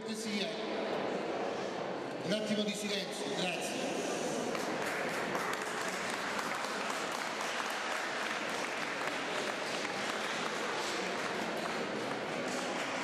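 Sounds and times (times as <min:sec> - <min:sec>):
audience applauding: 0:04.4 - 0:13.0.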